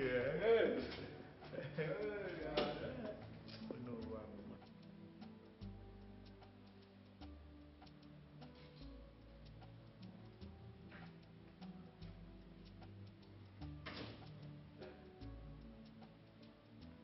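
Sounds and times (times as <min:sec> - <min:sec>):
light ticking beat: 0:00.0 - 0:17.0.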